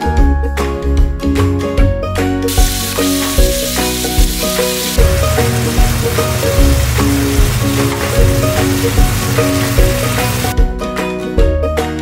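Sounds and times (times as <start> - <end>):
sausage and onion sizzling: 2.5 - 10.5.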